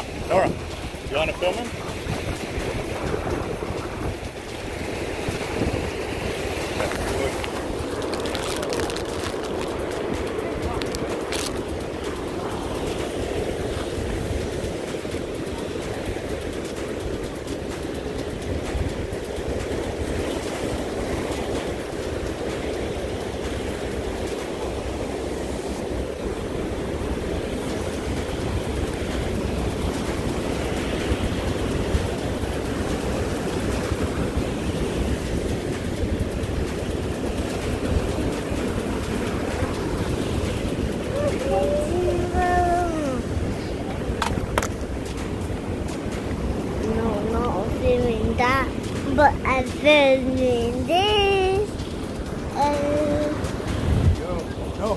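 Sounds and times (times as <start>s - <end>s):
surf breaking against rocks: 0.0s - 54.9s
wind rumbling on microphone: 0.0s - 54.9s.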